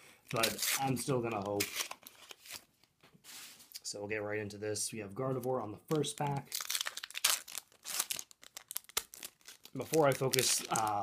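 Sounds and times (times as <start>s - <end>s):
foil wrapper tearing and crinkling: 0.3s - 2.6s, 6.3s - 11.0s.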